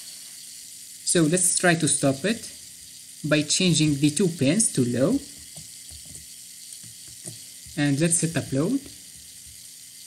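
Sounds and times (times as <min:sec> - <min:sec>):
small motor whirring: 0:00.0 - 0:10.0.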